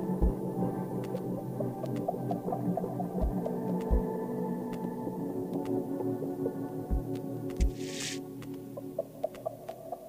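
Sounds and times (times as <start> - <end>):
brief hiss of noise: 7.7 - 8.2.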